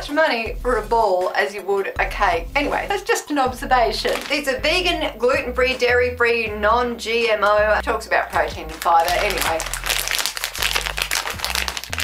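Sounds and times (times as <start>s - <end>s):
quiet background music: 0.0s - 12.0s
snack packet crinkling: 4.1s - 4.5s, 8.8s - 12.0s.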